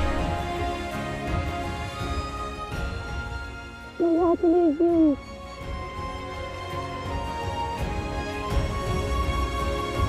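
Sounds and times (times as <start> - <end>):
soft sustained music: 0.0 - 10.0.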